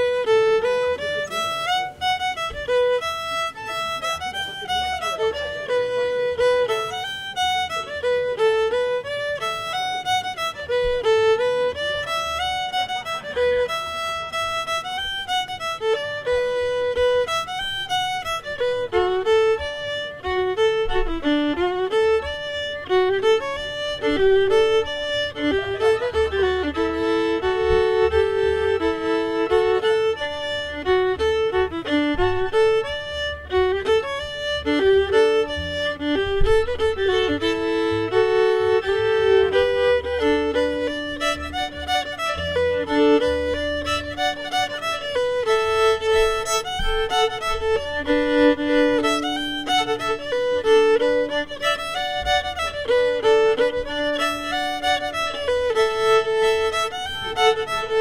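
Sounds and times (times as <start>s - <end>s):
solo fiddle playing: 0.0s - 58.0s.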